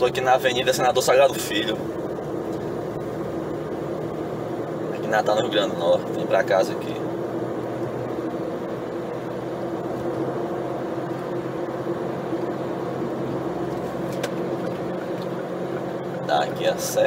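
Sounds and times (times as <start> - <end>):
engine and road noise drone: 0.0 - 17.0.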